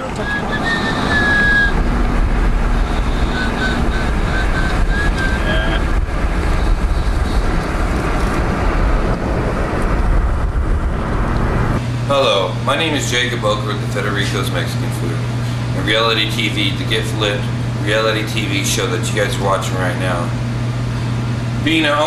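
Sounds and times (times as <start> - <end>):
car road and wind noise: 0.0 - 21.6.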